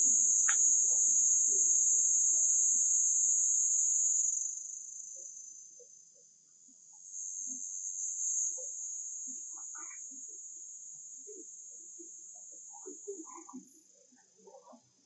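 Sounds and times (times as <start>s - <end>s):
high-pitched insect drone: 0.0s - 14.8s.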